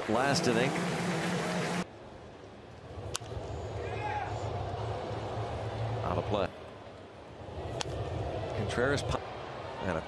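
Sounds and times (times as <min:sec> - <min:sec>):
ballpark crowd noise: 0:00.0 - 0:10.0.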